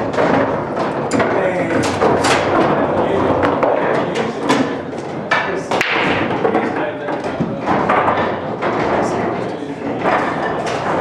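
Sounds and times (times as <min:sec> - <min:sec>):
sharp knocks: 0:00.0 - 0:11.0
crowd chatter: 0:01.0 - 0:11.0.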